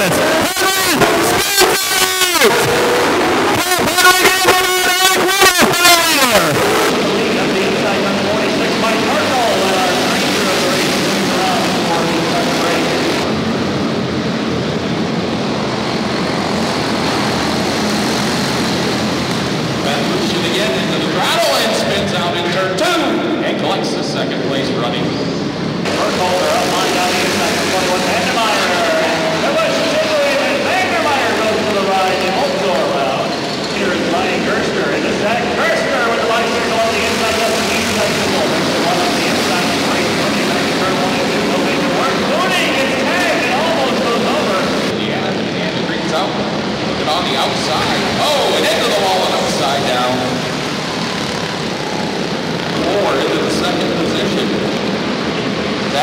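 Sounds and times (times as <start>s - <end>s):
small racing engines revving: 0.0s - 23.0s, 23.9s - 56.0s.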